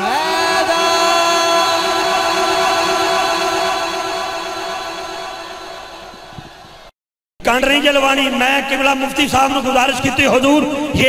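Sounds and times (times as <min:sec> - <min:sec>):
man singing long note over loudspeaker: 0:00.0 - 0:06.3.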